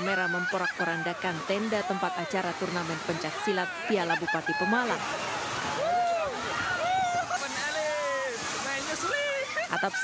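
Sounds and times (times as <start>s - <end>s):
heavy rain: 0.0s - 10.0s
people shouting and crying out: 0.0s - 10.0s.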